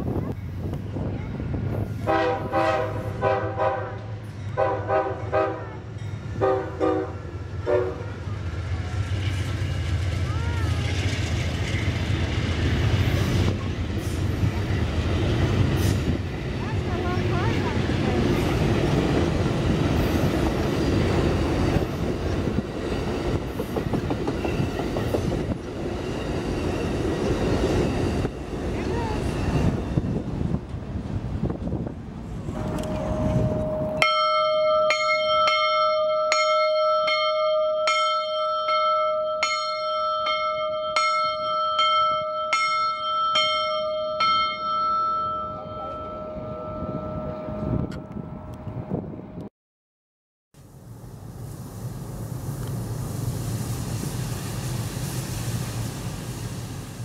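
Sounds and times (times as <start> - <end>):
train wheels on rails: 0.0 - 46.9, 51.0 - 57.0
railroad bell ringing: 4.2 - 7.4, 32.6 - 48.6.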